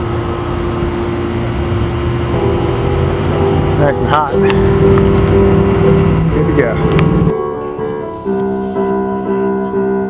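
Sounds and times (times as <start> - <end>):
machine humming: 0.0 - 7.3.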